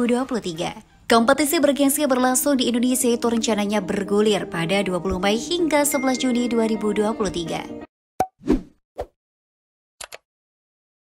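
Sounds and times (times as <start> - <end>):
pop sound effects: 8.2 - 9.1.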